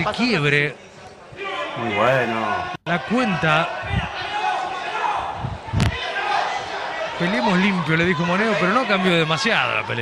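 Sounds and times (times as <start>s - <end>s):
crowd voices: 0.8s - 10.0s.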